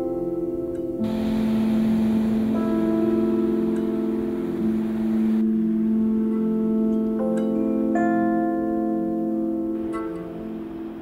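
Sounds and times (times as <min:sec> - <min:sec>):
ambient music with ringing tones: 0:00.0 - 0:11.0
steady hiss: 0:00.3 - 0:08.0, 0:09.8 - 0:11.0
low sustained note: 0:01.0 - 0:08.2, 0:09.8 - 0:11.0.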